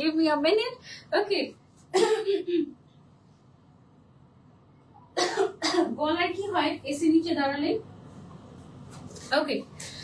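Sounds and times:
woman coughing: 1.9s - 2.8s, 5.2s - 6.0s.

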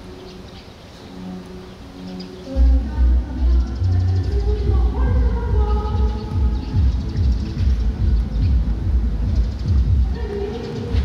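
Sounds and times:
faint music: 0.0s - 11.0s
loud uneven low rumble: 2.6s - 11.0s.

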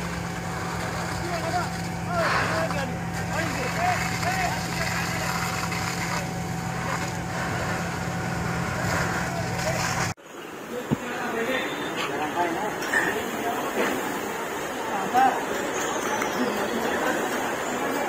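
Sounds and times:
hose jet spraying water: 0.0s - 10.2s
pump motor humming: 0.0s - 10.2s.

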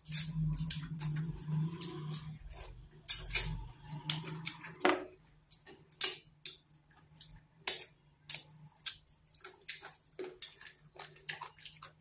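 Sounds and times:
wet chewing and lip-smacking: 5.5s - 12.0s.

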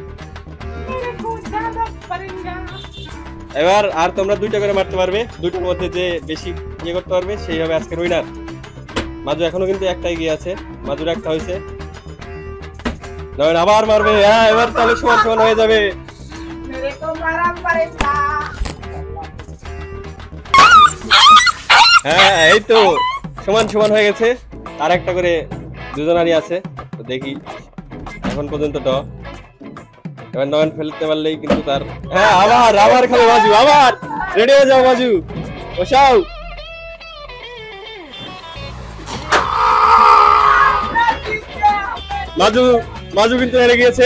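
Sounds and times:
background music: 0.0s - 44.0s
short loud yelping cries: 20.6s - 23.2s, 39.3s - 41.0s.

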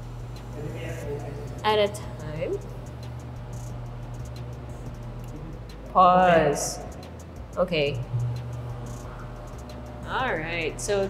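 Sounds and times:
electric roller shades motor hum: 0.0s - 11.0s.

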